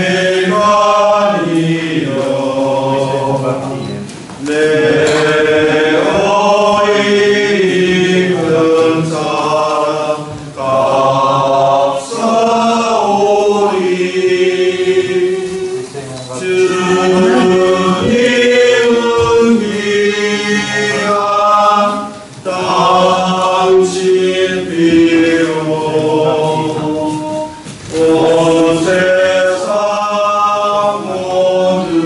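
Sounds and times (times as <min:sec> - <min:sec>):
congregation singing a hymn: 0:00.0 - 0:32.0.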